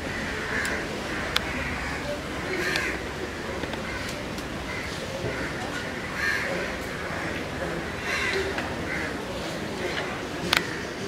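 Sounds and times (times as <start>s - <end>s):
crow cawing: 0.0s - 9.2s
low background voices: 0.0s - 11.0s.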